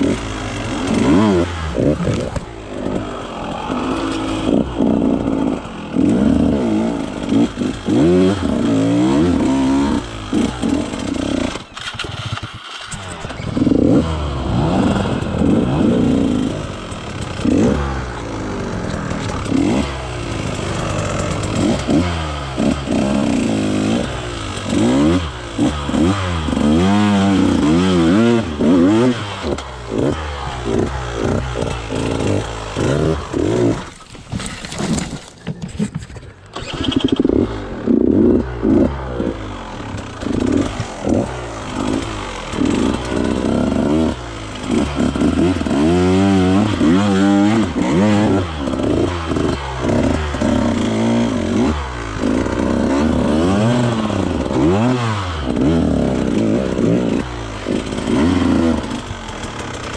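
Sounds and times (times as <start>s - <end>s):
motorcycle engine revving: 0.0s - 35.0s, 36.5s - 59.9s.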